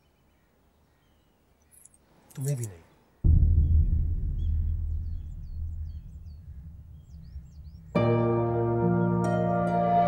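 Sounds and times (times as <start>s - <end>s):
faint bird chirps: 0.0s - 9.2s
deep rumbling drone: 3.2s - 10.0s.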